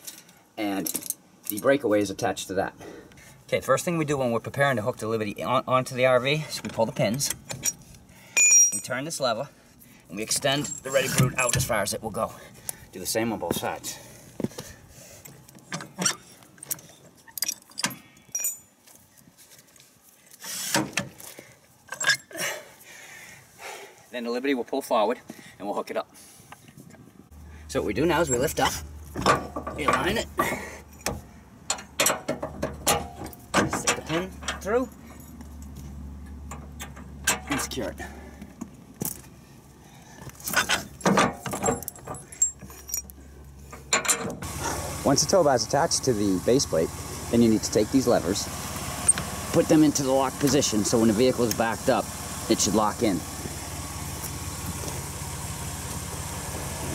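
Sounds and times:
metal hardware clinking: 7.0s - 8.9s, 15.6s - 18.8s, 28.1s - 35.8s, 36.4s - 37.8s, 40.4s - 44.4s
short metallic ring: 8.4s - 8.9s
metal clicks and clanks: 28.2s - 37.8s, 40.3s - 44.5s.

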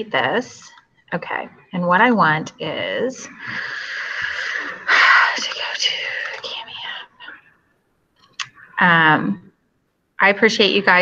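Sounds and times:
person whispering: 3.4s - 7.4s.

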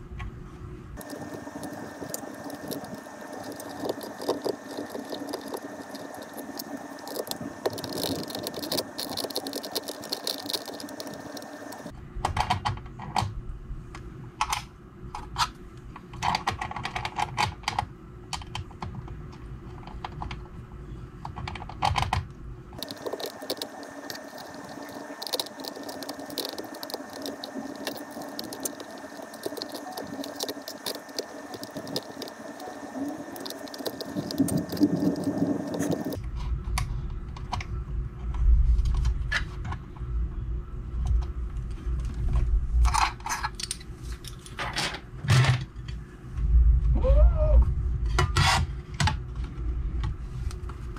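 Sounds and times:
faint steady hum: 0.0s - 50.9s
small screws clicking and tapping: 1.0s - 11.9s, 22.8s - 36.2s.

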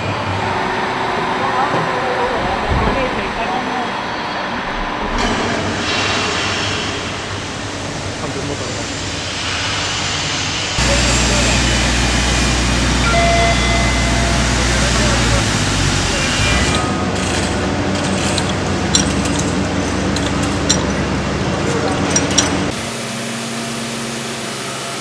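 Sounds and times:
factory machinery noise: 0.0s - 25.0s
deep steady hum: 10.8s - 17.0s.

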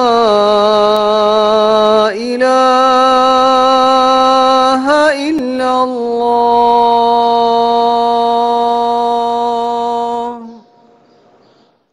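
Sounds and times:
man chanting long steady note: 0.0s - 11.0s.

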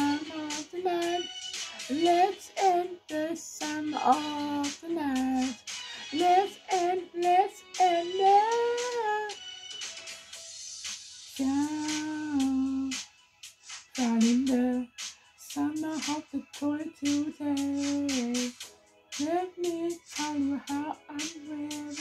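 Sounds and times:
person singing: 0.0s - 9.4s, 11.3s - 13.0s, 14.0s - 18.6s, 19.2s - 22.0s.

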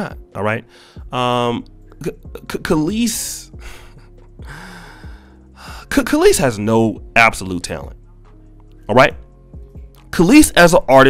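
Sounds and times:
man sighing out-breath: 3.6s - 5.9s.

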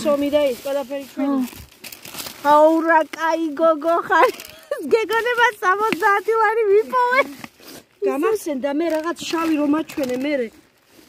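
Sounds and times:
plastic crinkling: 0.0s - 11.0s.

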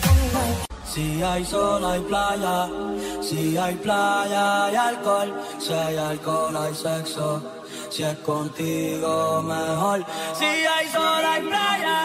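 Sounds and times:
latin pop song: 0.0s - 12.0s
person singing: 0.0s - 12.0s.

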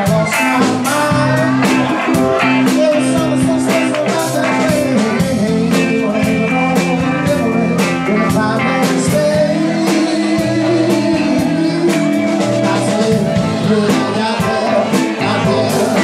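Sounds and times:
bass guitar: 0.0s - 16.0s
drum kit steady beat: 0.0s - 16.0s
electric guitars: 0.0s - 16.0s.

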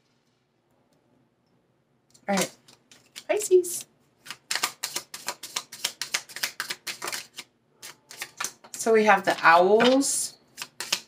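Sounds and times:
playing cards being shuffled: 2.3s - 11.0s.

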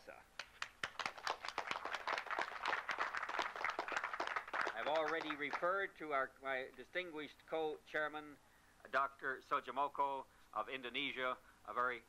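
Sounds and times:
audience clapping: 0.4s - 5.8s.

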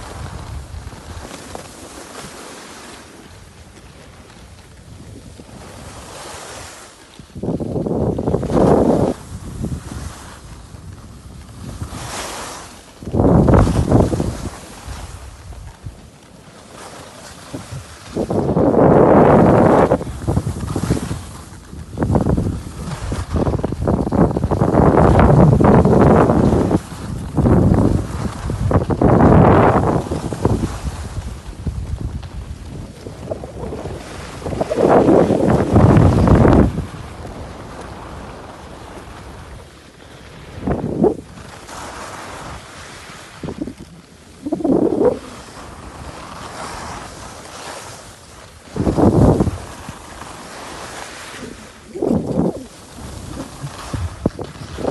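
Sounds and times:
wind buffeting microphone: 0.0s - 1.6s, 3.4s - 16.2s, 17.4s - 47.5s, 48.2s - 54.9s
snowboard scraping snow: 0.0s - 54.9s.

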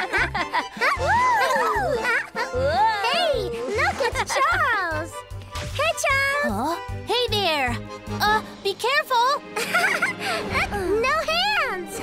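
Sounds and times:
cheerful music with beat: 0.0s - 10.4s
children whooping and squealing: 0.8s - 3.3s.

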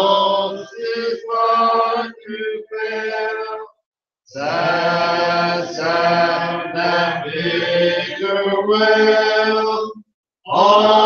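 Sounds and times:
congregation singing a hymn: 0.0s - 3.7s, 4.3s - 11.0s.

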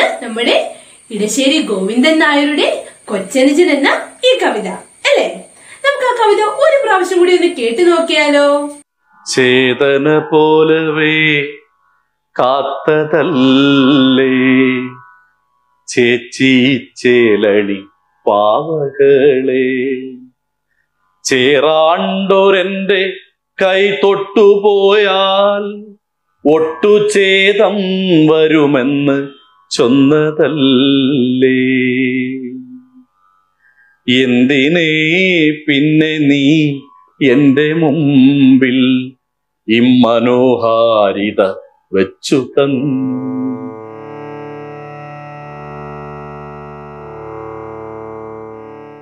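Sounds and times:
person singing chant-like melody: 0.0s - 15.2s, 15.9s - 20.4s, 21.2s - 33.1s, 34.0s - 45.1s.

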